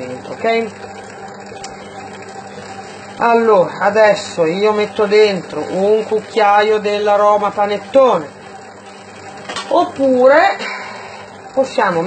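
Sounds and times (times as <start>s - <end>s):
electric dough mixer running: 0.0s - 12.0s.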